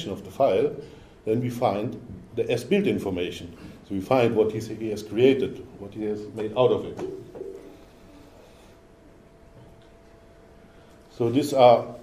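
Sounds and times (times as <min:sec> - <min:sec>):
man talking: 0:00.0 - 0:07.2, 0:11.1 - 0:12.0
faint steady hum: 0:00.0 - 0:12.0.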